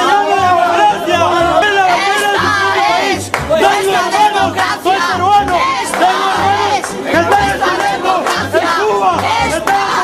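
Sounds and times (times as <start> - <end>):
crowd chanting: 0.0 - 10.0
low rhythmic beat: 0.0 - 10.0.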